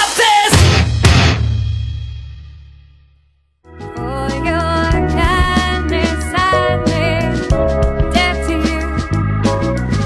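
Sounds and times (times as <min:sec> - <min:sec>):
rock band final hit: 0:00.5 - 0:02.7.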